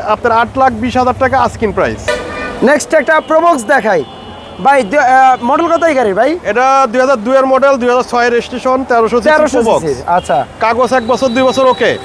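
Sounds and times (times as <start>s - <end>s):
low traffic rumble: 0.0s - 12.0s
man talking: 0.0s - 12.0s
vehicle horn toot: 2.1s - 6.1s, 10.2s - 12.0s.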